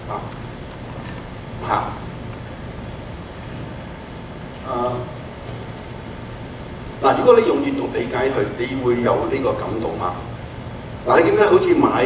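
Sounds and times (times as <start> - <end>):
sound system hum: 0.0 - 12.0.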